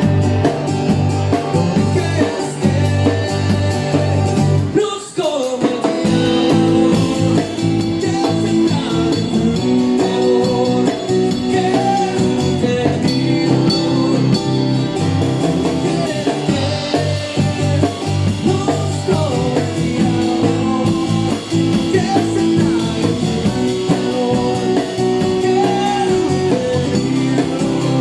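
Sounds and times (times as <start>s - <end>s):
man singing rock song: 0.0s - 28.0s.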